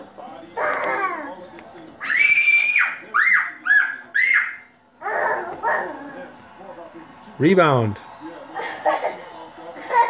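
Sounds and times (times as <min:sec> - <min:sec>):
toddler squealing: 0:02.0 - 0:05.9.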